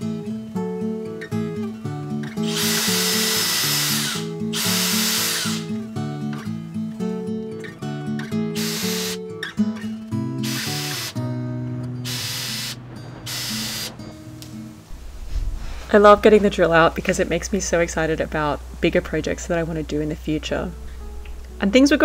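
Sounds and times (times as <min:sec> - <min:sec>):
acoustic guitar music: 0:00.0 - 0:22.0
cordless drill boring holes: 0:02.4 - 0:05.7, 0:08.6 - 0:09.2, 0:10.4 - 0:11.2, 0:12.1 - 0:13.9.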